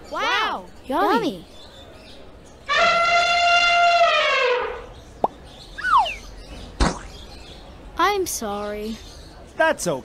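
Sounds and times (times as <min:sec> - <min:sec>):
cartoon elephant trumpeting: 0:02.7 - 0:04.8
falling whistle-like swoops: 0:05.8 - 0:06.2
sharp smack: 0:06.8 - 0:07.1.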